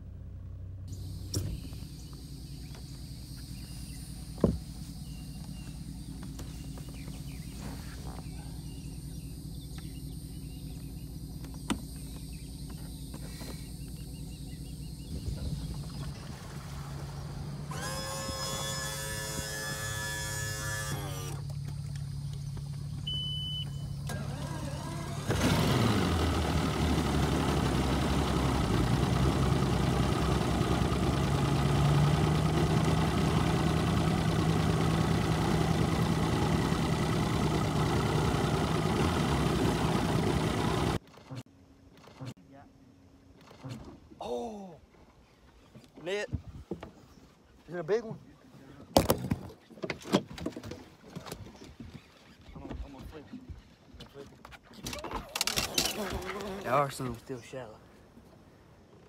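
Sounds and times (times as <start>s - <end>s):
outboard motor idling: 0.0s - 41.4s.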